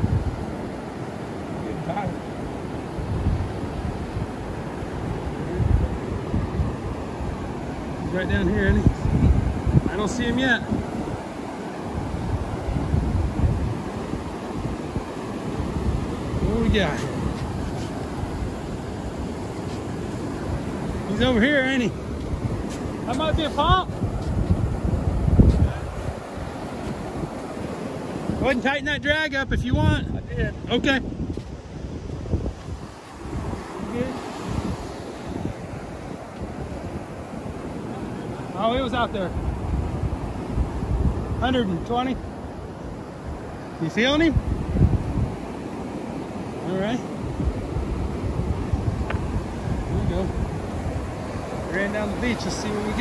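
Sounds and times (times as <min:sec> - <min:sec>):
surf washing up beach: 0:00.0 - 0:53.0
wind buffeting microphone: 0:00.0 - 0:53.0.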